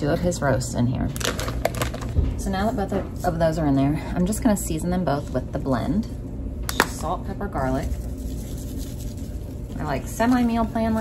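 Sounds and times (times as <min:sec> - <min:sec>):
steady low hum: 0:00.0 - 0:11.0
soft sprinkle of seasoning: 0:07.4 - 0:11.0.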